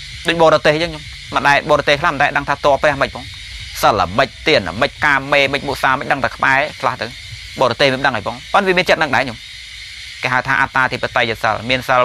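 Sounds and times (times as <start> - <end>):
background hiss: 0.0 - 12.0
man preaching: 0.3 - 9.4, 10.2 - 12.0.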